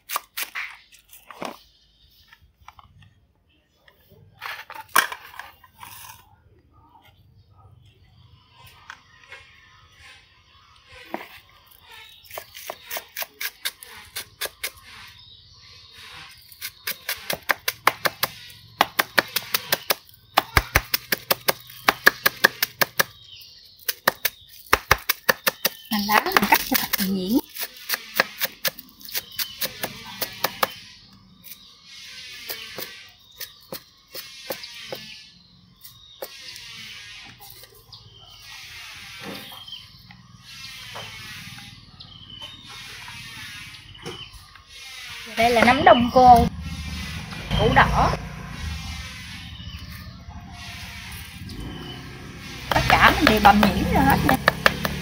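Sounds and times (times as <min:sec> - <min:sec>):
cleaver chopping on wooden board: 0:16.6 - 0:23.2, 0:23.8 - 0:30.8, 0:54.0 - 0:55.0.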